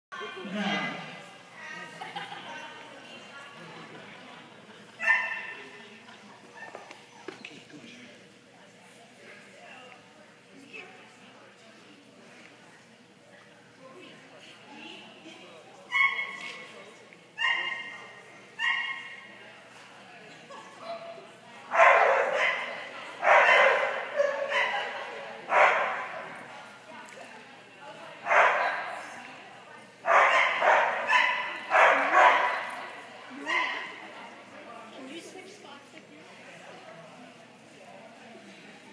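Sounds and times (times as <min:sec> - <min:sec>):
dog barking in echoing hall: 0:05.0 - 0:05.8, 0:15.9 - 0:16.5, 0:17.4 - 0:19.3, 0:21.7 - 0:26.4, 0:28.2 - 0:29.0, 0:30.0 - 0:32.8, 0:33.4 - 0:34.0.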